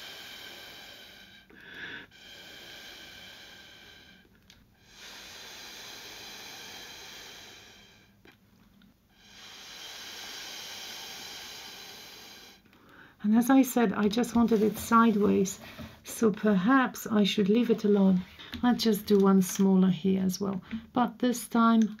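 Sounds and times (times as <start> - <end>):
air blown through a straw: 0.0 - 8.2, 9.2 - 12.6.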